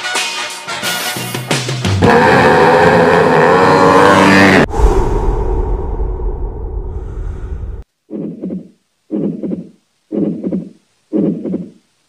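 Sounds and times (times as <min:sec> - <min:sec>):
low rumbling whoosh: 0:04.6 - 0:07.8.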